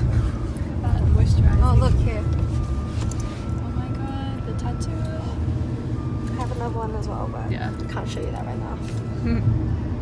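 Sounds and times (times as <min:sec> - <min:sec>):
car road and engine rumble: 0:00.0 - 0:10.0.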